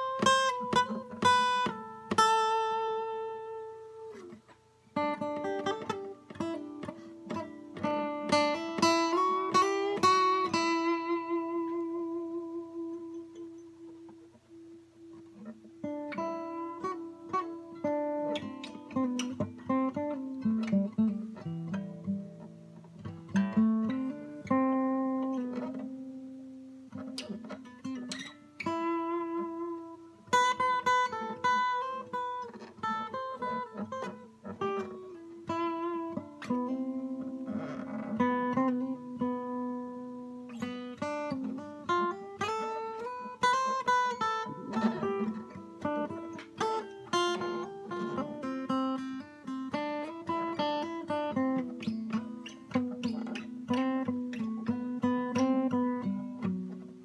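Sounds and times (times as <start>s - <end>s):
acoustic guitar playing: 0.0s - 57.0s.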